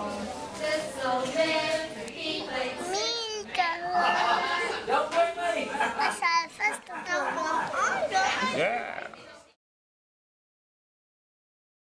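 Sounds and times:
children chattering and playing: 0:00.0 - 0:09.6.

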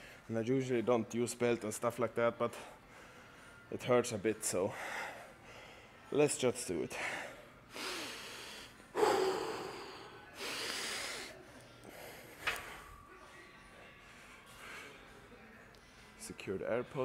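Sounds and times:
man breathing hard through nose: 0:07.7 - 0:12.8.

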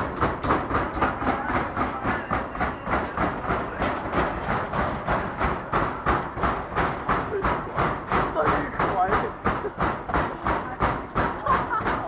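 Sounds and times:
packed crowd: 0:00.0 - 0:12.0
rhythmic banging: 0:00.0 - 0:12.0.

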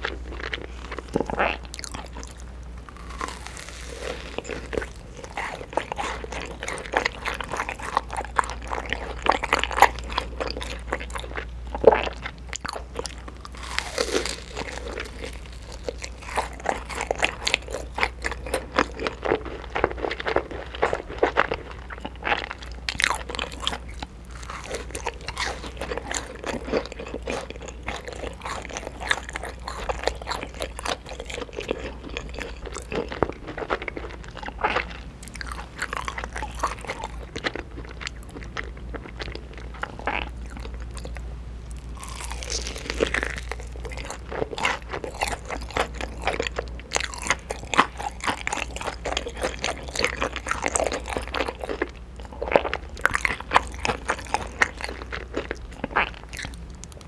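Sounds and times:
chewing soft bread: 0:00.0 - 0:57.0
crunchy bites of fried chicken: 0:00.0 - 0:57.0.

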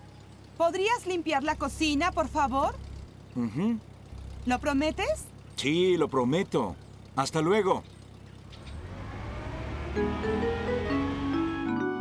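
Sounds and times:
car engine rumble: 0:00.0 - 0:11.9.

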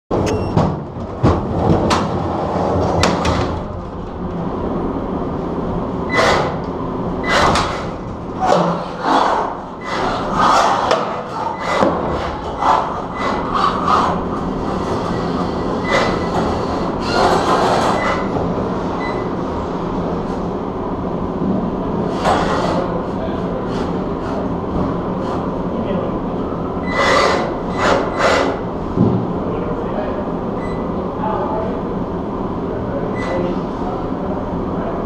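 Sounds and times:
mechanical rumble: 0:00.1 - 0:10.9.

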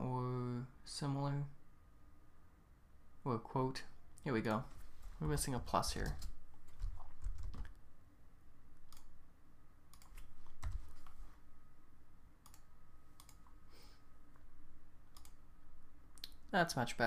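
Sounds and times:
keyboard keystrokes: 0:06.0 - 0:07.8, 0:09.9 - 0:11.2
mouse clicks: 0:09.9 - 0:10.3, 0:12.4 - 0:13.6, 0:15.1 - 0:15.4.

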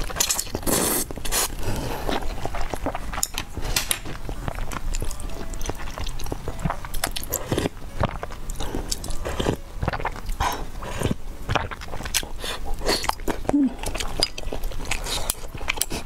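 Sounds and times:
person chewing noodles: 0:00.0 - 0:16.0.

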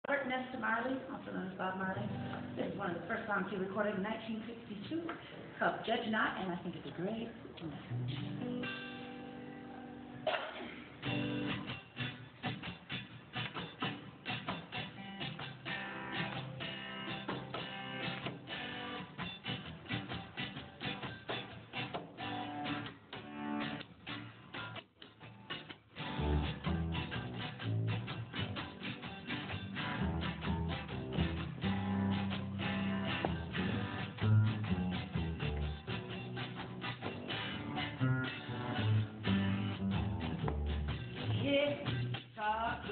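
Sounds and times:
acoustic guitar strumming: 0:02.0 - 0:02.9, 0:07.9 - 0:42.9
double bass notes: 0:26.2 - 0:28.1, 0:29.4 - 0:42.2.

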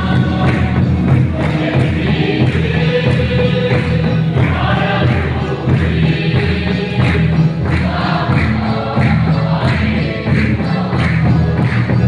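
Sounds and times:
congregation singing a hymn: 0:00.0 - 0:12.0
drum beating steady rhythm: 0:00.0 - 0:12.0.

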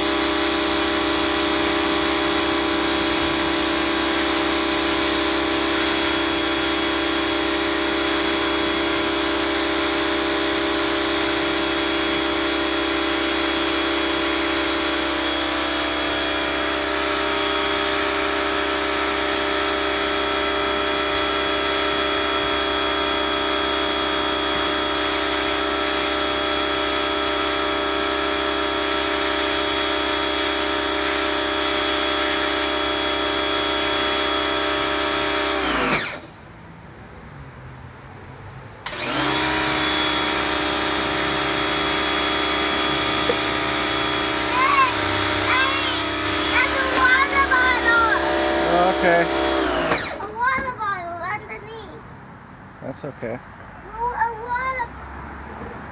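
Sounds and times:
pressure washer pump humming: 0:00.0 - 0:36.6, 0:38.8 - 0:51.5
water jet hissing on wood: 0:39.7 - 0:50.5.

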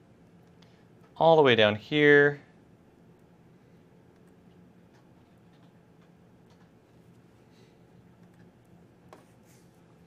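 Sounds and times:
steady low hum: 0:00.0 - 0:10.0
computer mouse clicks: 0:04.1 - 0:06.8, 0:08.2 - 0:09.2.

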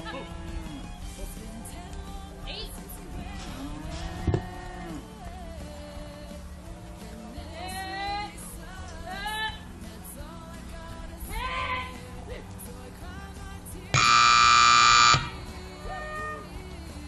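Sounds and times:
background music: 0:00.0 - 0:17.0
timer buzzer tone: 0:14.0 - 0:15.4.

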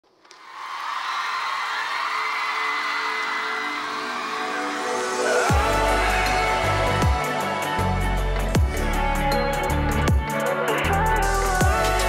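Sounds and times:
audience cheering and screaming: 0:00.3 - 0:08.2
song intro: 0:03.0 - 0:12.0.

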